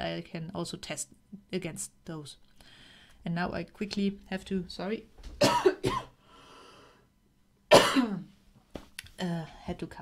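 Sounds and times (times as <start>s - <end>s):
woman breathing in: 2.6s - 3.2s, 6.2s - 7.1s
woman coughing: 5.4s - 6.2s, 7.7s - 8.3s.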